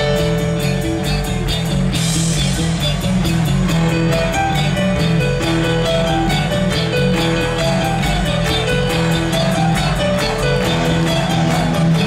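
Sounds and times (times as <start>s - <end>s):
bass: 0.0s - 12.0s
distorted electric guitars: 0.0s - 12.0s
drum kit beat: 0.0s - 12.0s
keyboards: 0.0s - 12.0s.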